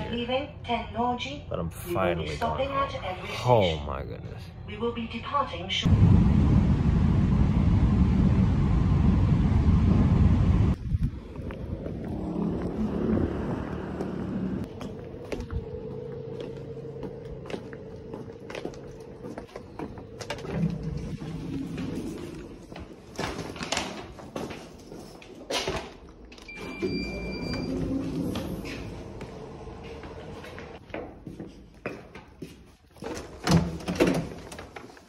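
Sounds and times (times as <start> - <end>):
train rumble inside carriage: 5.8 - 22.7
quiet footsteps: 14.0 - 23.2.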